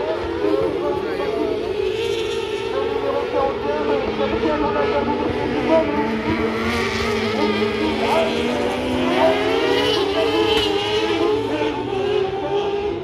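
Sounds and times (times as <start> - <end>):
buggy engines revving: 0.0 - 13.0.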